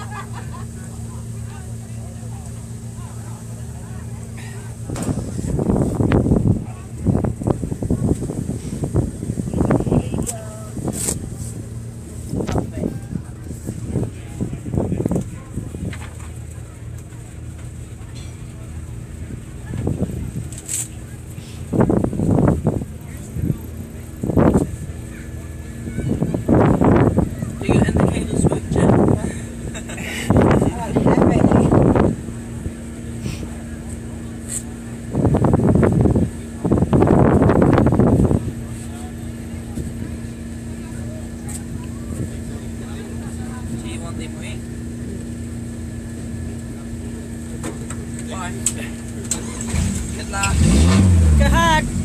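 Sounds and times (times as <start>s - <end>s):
engine idling: 0.0s - 52.0s.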